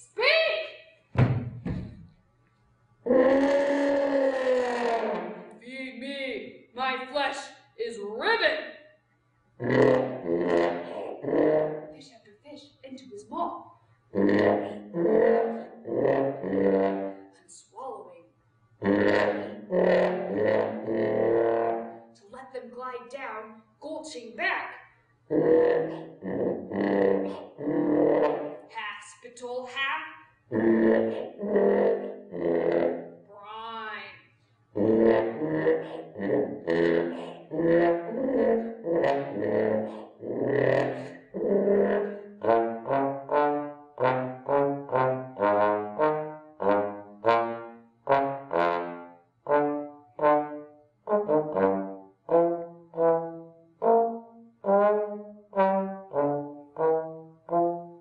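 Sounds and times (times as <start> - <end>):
muted trombone low rough notes: 3.1 - 5.4, 9.6 - 12.0, 14.1 - 17.3, 18.8 - 22.1, 25.3 - 28.6, 30.5 - 33.2, 34.8 - 57.9.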